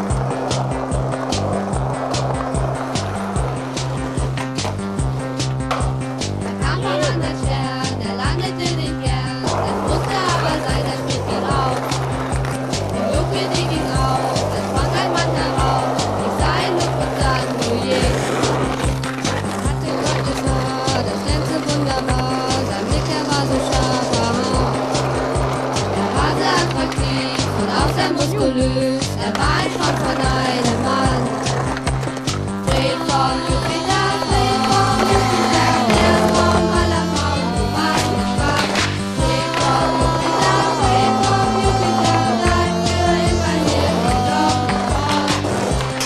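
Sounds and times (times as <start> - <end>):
music with repeating bass beat: 0.0 - 46.0
skateboard clacking and grinding: 0.0 - 46.0
skateboard wheels rolling on concrete: 0.0 - 46.0.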